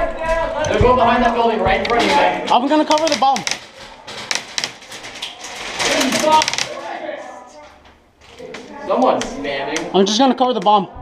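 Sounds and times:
people shouting: 5.8 - 7.6.

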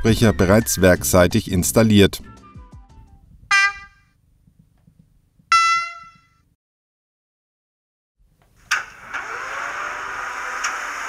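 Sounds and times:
model locomotive horn blasts: 3.5 - 4.1, 5.5 - 6.4.

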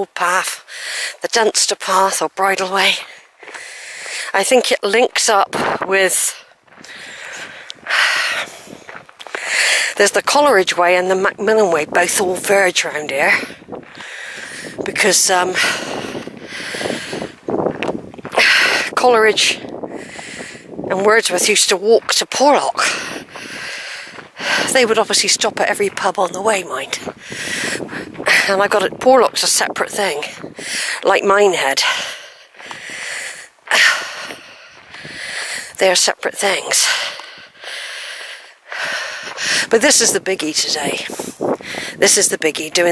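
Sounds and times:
person breathing close up: 0.6 - 1.2, 3.2 - 4.4, 6.8 - 10.0, 13.8 - 14.8, 15.6 - 17.4, 19.9 - 20.7, 22.8 - 24.7, 27.2 - 28.5, 30.5 - 31.0, 31.8 - 35.8, 36.8 - 39.7, 41.2 - 42.0.

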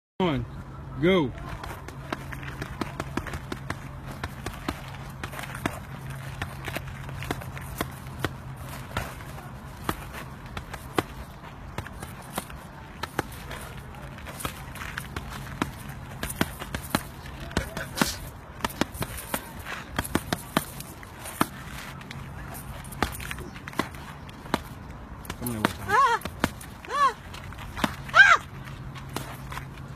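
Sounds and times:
punches smacking a body: 1.6 - 29.6.

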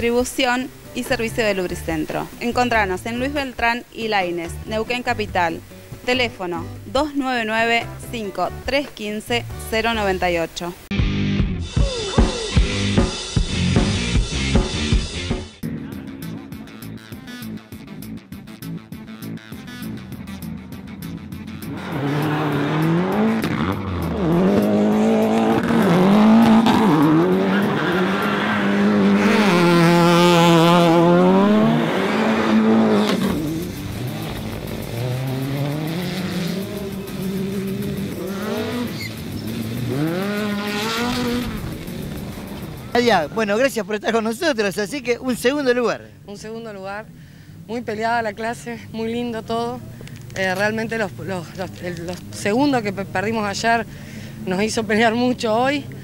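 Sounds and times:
rally car engines revving: 20.7 - 43.4.

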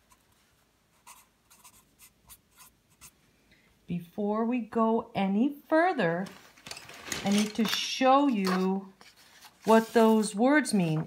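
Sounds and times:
marker writing on paper: 1.0 - 3.1.

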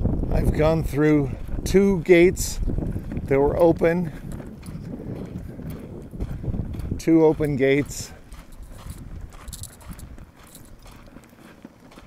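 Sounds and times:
footsteps on dirt path: 0.0 - 12.0.

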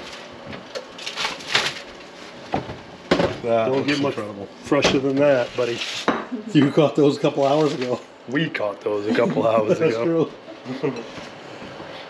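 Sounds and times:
foil and metal scraping: 1.0 - 2.5, 5.3 - 6.1, 7.4 - 8.0.

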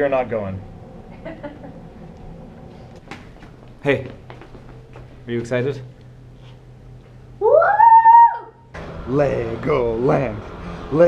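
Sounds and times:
child cheering woo: 7.4 - 8.6.

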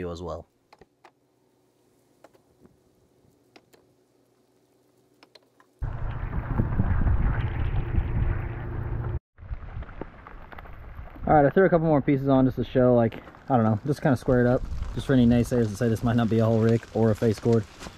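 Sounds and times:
rain and wind on microphone: 4.2 - 17.9.

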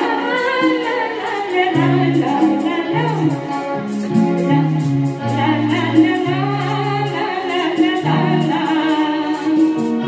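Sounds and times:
electric guitar: 0.0 - 10.0
keyboard: 0.0 - 10.0
person singing: 0.0 - 10.0.

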